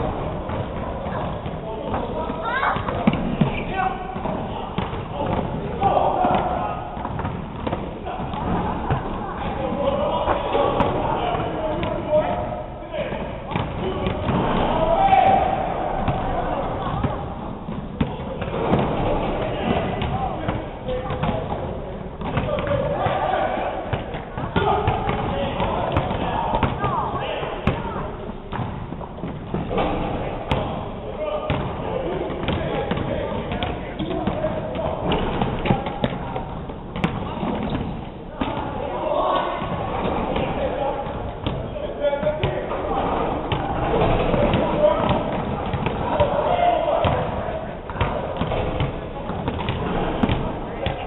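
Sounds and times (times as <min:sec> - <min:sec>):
basketballs bouncing on hardwood: 0:00.0 - 0:12.4, 0:13.2 - 0:23.3, 0:23.9 - 0:30.8, 0:31.5 - 0:38.7, 0:39.5 - 0:51.0
indistinct chatter: 0:00.0 - 0:51.0.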